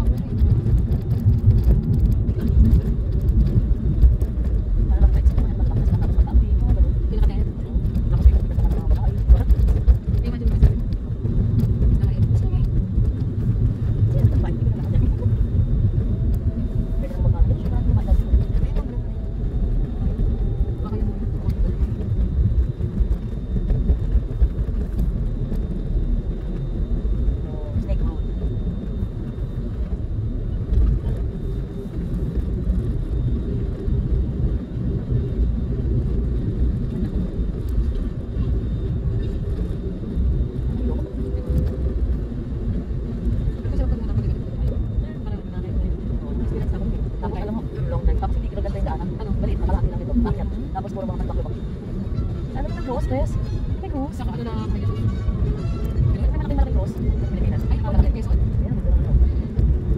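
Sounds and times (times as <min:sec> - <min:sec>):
car tyres and engine rumble: 0:00.0 - 0:59.9.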